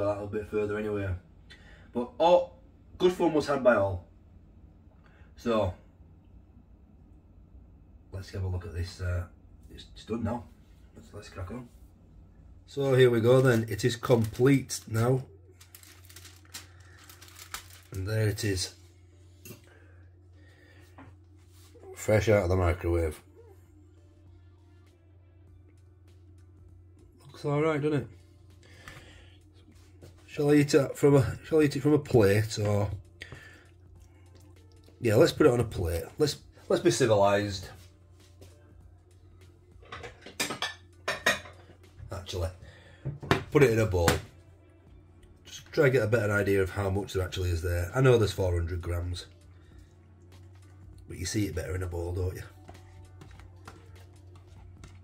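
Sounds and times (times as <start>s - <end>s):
plastic film lid crinkling: 15.6s - 18.0s.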